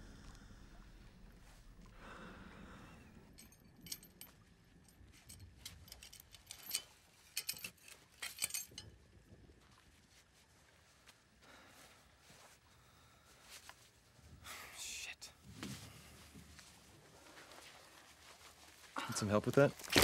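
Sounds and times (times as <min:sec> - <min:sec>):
metal hook clinking and rattling: 0:03.2 - 0:09.0.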